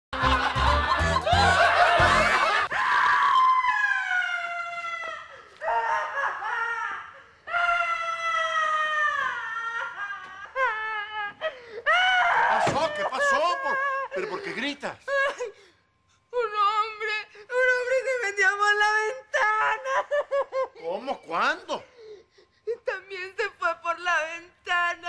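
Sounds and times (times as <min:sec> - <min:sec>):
woman screaming: 0:01.6 - 0:14.1, 0:16.5 - 0:20.3.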